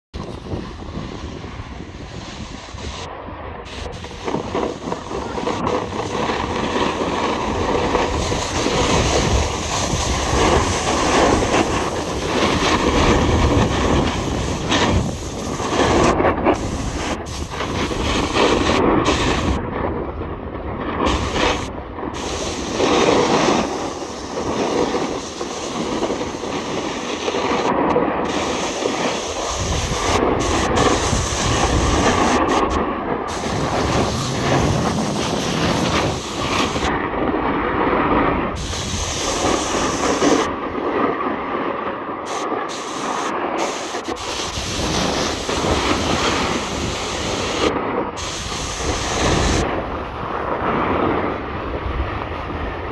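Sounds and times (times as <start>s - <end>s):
wind rushing over microphone: 0.1s - 52.9s
skis scraping over snow: 0.2s - 52.9s.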